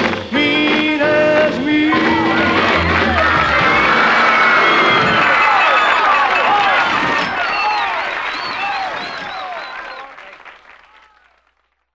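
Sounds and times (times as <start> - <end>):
crowd shouting and screaming: 1.9 - 10.2
audience applause: 1.9 - 11.7.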